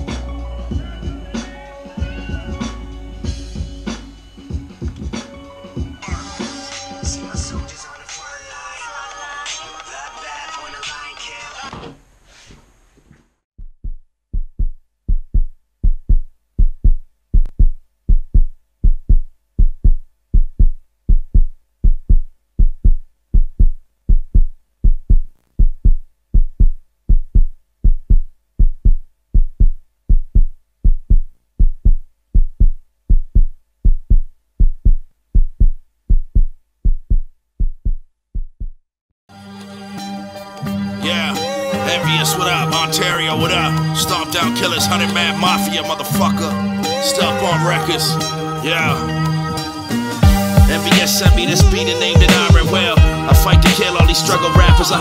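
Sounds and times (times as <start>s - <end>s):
music: 0.0s - 11.7s, 39.3s - 55.0s
deep heartbeat-like thump: 13.6s - 38.9s.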